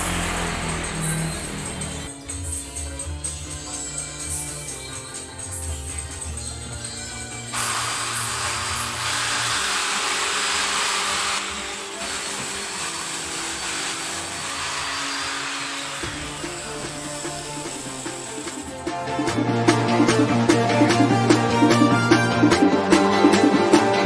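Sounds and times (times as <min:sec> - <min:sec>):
background music: 0:00.0 - 0:09.1, 0:15.5 - 0:24.0
electric power tool whirring: 0:07.5 - 0:18.8.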